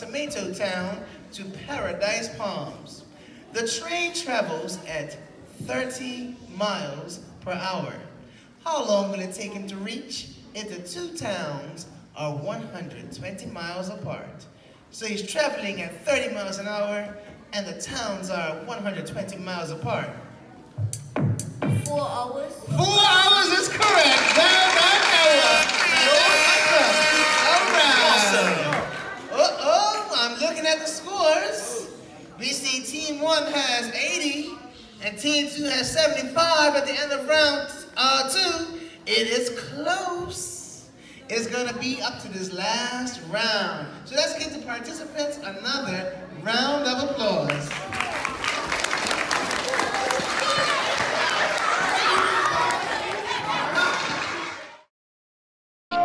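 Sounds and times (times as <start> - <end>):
music: 20.8 - 22.0
schoolchildren chattering: 27.8 - 30.2, 49.7 - 54.8.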